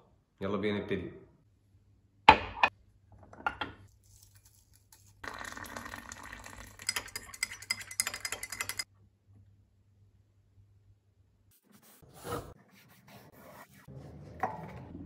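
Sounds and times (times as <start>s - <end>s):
teaspoon stirring and clinking glass: 4.2s - 8.9s
water pouring into glass mug: 5.2s - 8.8s.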